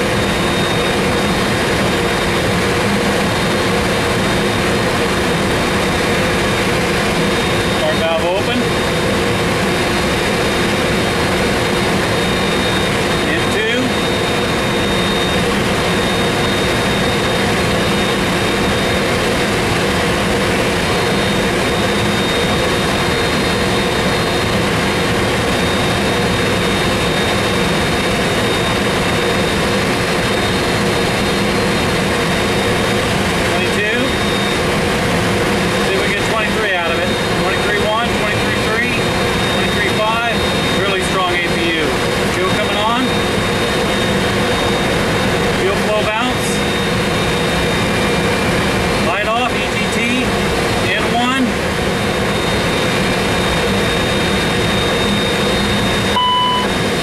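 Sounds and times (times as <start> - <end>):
high engine whine: 0.0 - 57.0
jet engine rush of air: 0.0 - 57.0.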